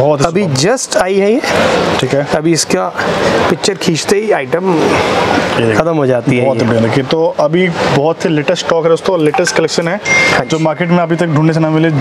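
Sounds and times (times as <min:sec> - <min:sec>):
man speaking: 0:05.6 - 0:12.0.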